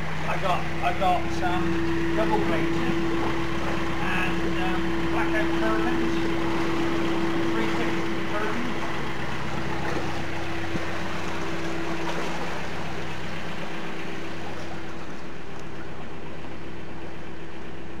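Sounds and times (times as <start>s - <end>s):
higher steady tone: 0.0s - 15.6s
diesel engine low hum: 0.0s - 18.0s.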